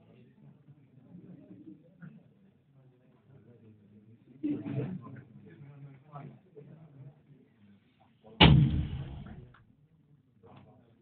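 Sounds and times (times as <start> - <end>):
loud artillery boom: 8.4 - 9.5.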